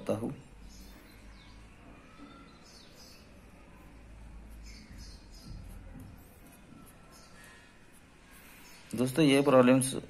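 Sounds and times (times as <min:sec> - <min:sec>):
birds chirping faintly: 0:00.0 - 0:10.0
pen scratching on paper: 0:04.5 - 0:08.6.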